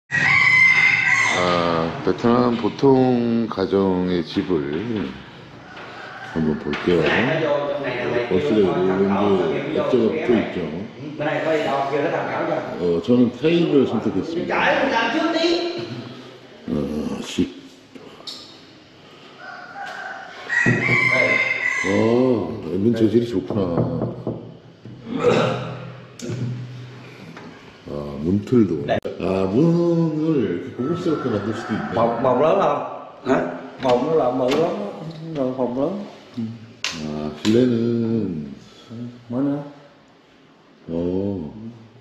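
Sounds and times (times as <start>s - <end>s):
rooster crowing: 0.1s - 2.0s, 5.3s - 7.4s, 19.4s - 22.6s, 30.6s - 32.7s.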